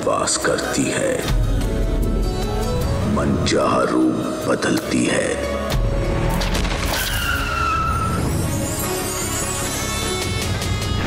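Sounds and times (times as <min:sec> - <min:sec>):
dramatic background music: 0:00.0 - 0:11.0
tyres screeching: 0:06.9 - 0:08.5.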